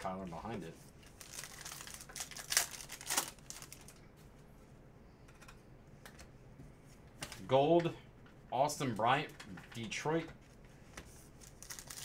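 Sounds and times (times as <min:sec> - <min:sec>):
card packaging crinkling: 0:01.1 - 0:04.0, 0:11.4 - 0:12.0.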